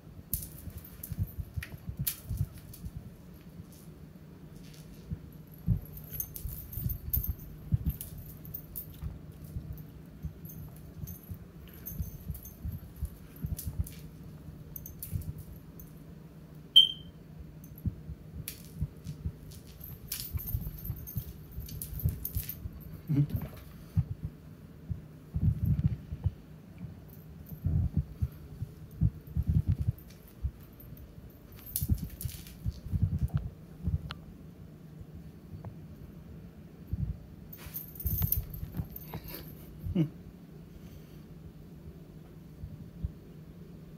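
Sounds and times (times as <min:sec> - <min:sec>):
low steady hum: 0:00.0 - 0:43.9
short high-pitched squeak: 0:16.8 - 0:17.1.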